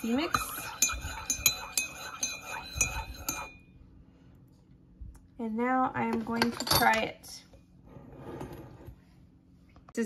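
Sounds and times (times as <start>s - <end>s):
teaspoon clinking in ceramic mug: 0.0s - 3.6s.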